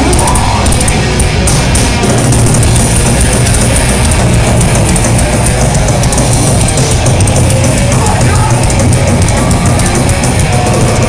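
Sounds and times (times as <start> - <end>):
distorted electric guitar: 0.0 - 11.0
drums with rapid cymbal hits: 0.0 - 11.0.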